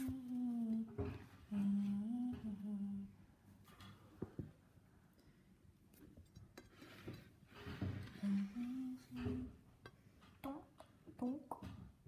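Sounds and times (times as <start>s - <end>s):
person humming: 0.0s - 3.2s, 8.2s - 9.6s.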